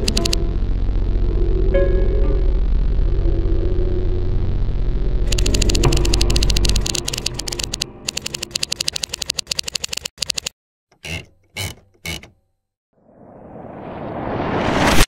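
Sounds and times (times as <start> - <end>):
fast mechanical clicks: 0.0 - 0.4, 5.3 - 12.4
short bursts of noise: 0.0 - 0.4, 5.3 - 12.3
low droning rumble: 0.0 - 6.8.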